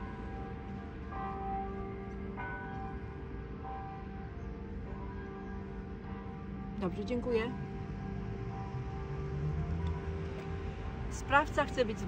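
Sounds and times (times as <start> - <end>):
bells ringing: 0.0 - 12.0.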